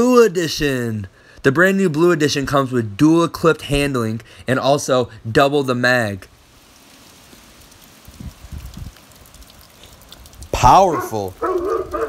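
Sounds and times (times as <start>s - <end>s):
wind buffeting microphone: 8.1s - 9.0s.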